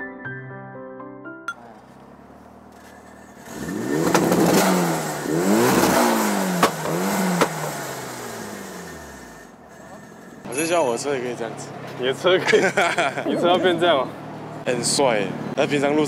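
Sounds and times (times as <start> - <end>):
car engine revving: 1.7 - 10.4
exhaust pops: 2.7 - 7.8.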